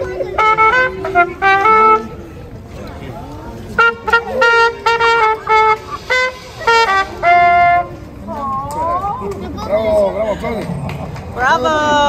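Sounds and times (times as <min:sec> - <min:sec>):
trumpet playing: 0:00.0 - 0:02.5, 0:03.7 - 0:08.2
voices talking: 0:00.0 - 0:12.0.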